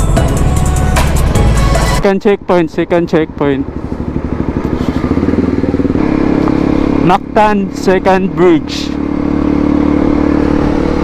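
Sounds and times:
motorcycle engine accelerating: 0:01.0 - 0:11.0.

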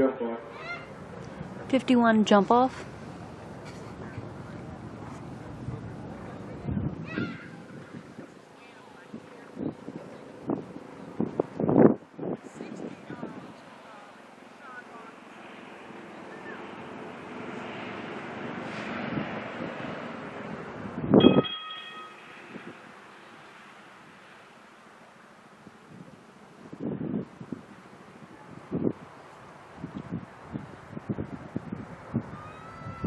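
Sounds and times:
outdoor arena noise: 0:00.0 - 0:11.3
wind on microphone: 0:03.8 - 0:13.8, 0:18.2 - 0:21.6, 0:22.4 - 0:23.0, 0:25.6 - 0:33.0.

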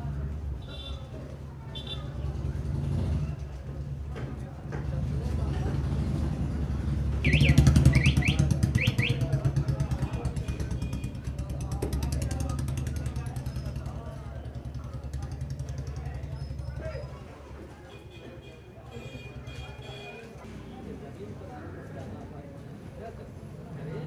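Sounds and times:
vehicle engine pulsing: 0:05.6 - 0:10.8.

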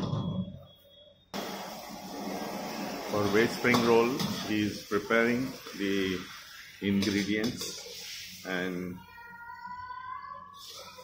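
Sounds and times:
wok on gas burner rushing: 0:01.4 - 0:08.5.

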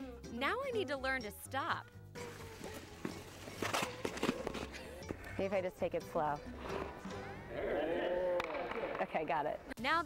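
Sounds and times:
skate blades scraping ice: 0:02.2 - 0:04.9.

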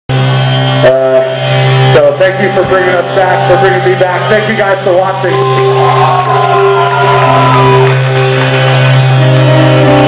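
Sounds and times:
amplified band drone: 0:00.1 - 0:10.0.

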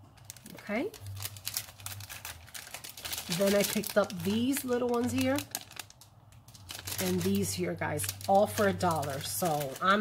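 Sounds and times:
cellophane packaging crinkling: 0:00.1 - 0:10.0.

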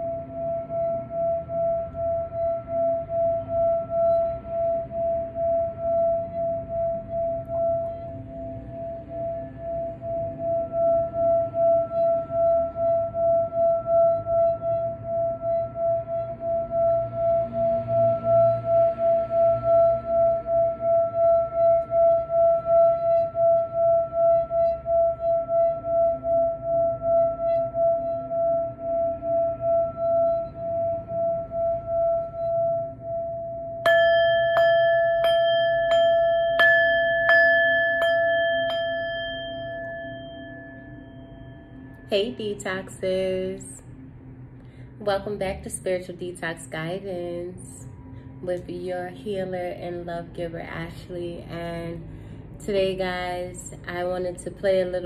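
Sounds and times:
singing bowl struck: 0:00.0 - 0:43.8
singing bowl ringing tone: 0:00.0 - 0:44.1.

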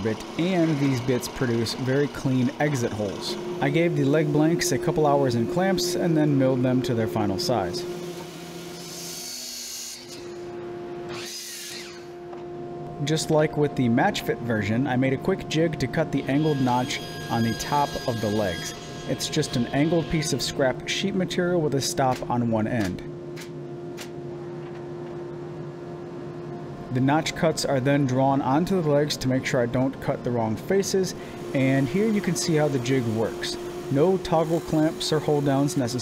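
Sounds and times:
miter saw cutting wood: 0:00.0 - 0:10.4, 0:11.1 - 0:12.1, 0:16.2 - 0:20.6, 0:30.9 - 0:36.0
steady hum: 0:00.0 - 0:36.0.

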